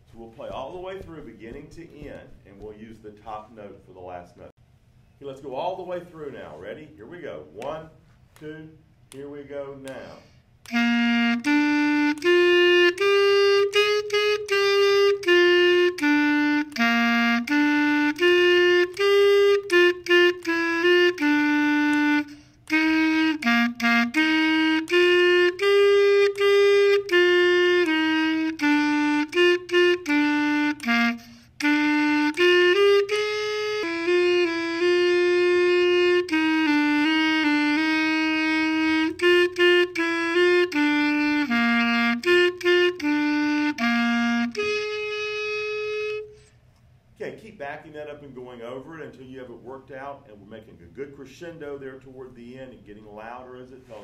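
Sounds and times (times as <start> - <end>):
clarinet playing exercise: 0.0 - 4.5, 6.4 - 46.7, 51.8 - 54.0.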